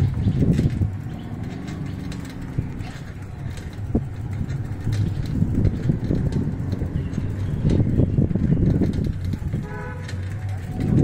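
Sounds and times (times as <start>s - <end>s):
vehicle engine rumble: 0.0s - 11.0s.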